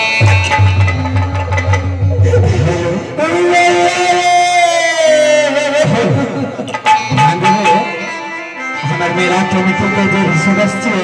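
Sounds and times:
live stage music: 0.0 - 11.0.

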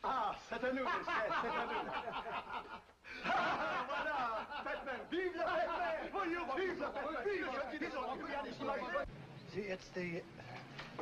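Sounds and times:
men talking: 0.0 - 11.0
men laughing: 0.6 - 9.0.

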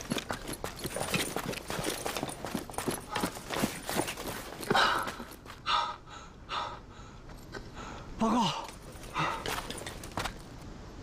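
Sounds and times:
man panting heavily: 4.6 - 9.7.

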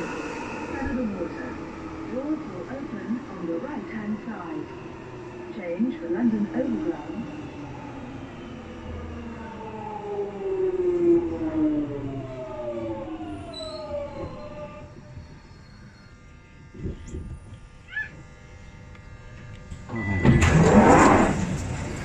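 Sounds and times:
train motors whining: 0.0 - 22.0
train doors sliding open: 13.4 - 15.0, 19.7 - 22.0.

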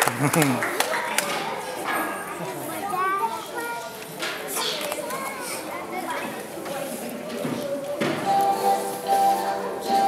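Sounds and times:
young children chattering: 0.0 - 10.0
high child's voice: 2.4 - 6.3.

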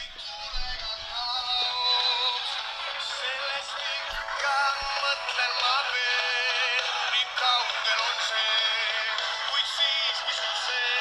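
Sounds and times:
tinny radio song with singing: 0.0 - 11.0.

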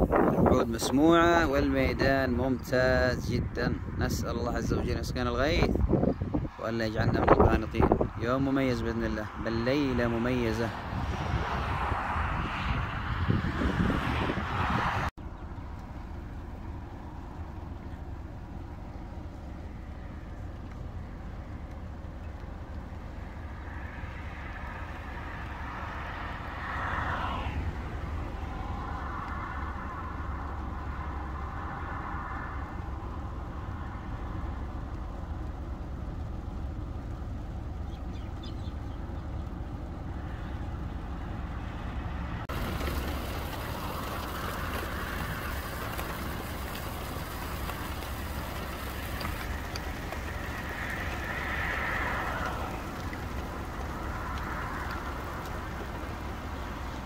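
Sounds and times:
steady low traffic rumble: 0.0 - 57.0
vehicles passing: 0.0 - 57.0.

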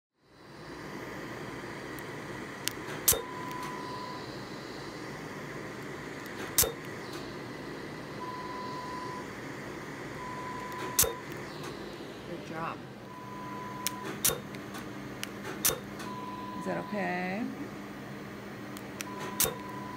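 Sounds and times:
laser unit fan hum: 0.2 - 19.9
laser snapping pulses: 2.6 - 3.7, 6.2 - 7.3, 10.6 - 11.8, 13.8 - 16.1, 18.8 - 19.8
high beep: 3.1 - 4.3, 8.2 - 9.2, 10.2 - 11.3, 13.1 - 14.4, 16.0 - 17.1.

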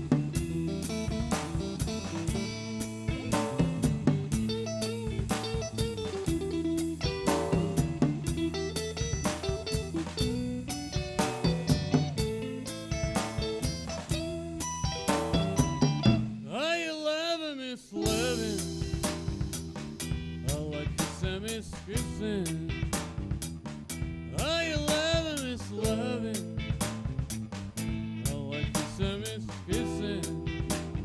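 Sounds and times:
drum kit beat: 0.0 - 16.5, 18.0 - 31.0
electric guitars: 0.0 - 16.5, 18.0 - 31.0.

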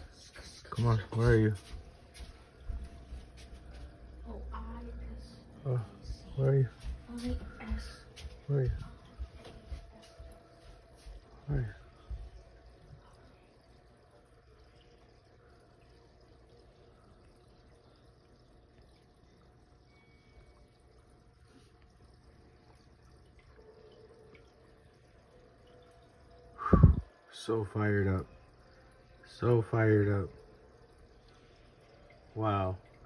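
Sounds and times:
aquarium filter bubbling: 0.0 - 33.0
faint steady hum: 0.0 - 33.0.

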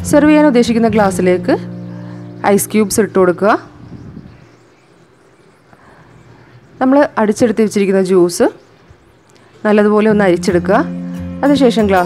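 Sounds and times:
woman speaking: 0.0 - 1.8, 2.4 - 3.8, 6.8 - 8.6, 9.6 - 12.0.

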